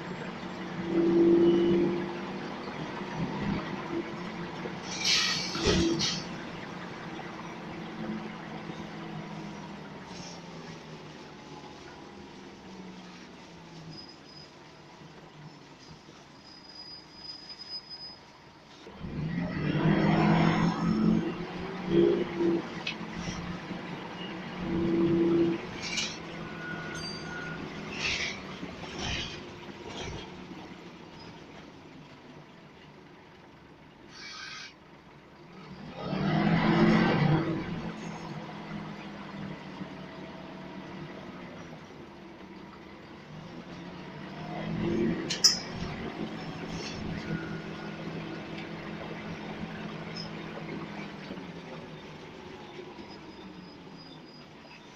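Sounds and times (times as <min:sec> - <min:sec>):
bus diesel engine accelerating: 0:00.0 - 0:17.2, 0:18.2 - 0:54.9
short hissing: 0:34.1 - 0:34.8.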